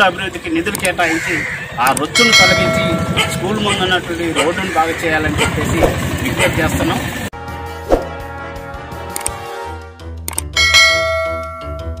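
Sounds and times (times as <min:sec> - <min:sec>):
background music: 0:07.3 - 0:12.0
quick clicks: 0:10.3 - 0:10.5.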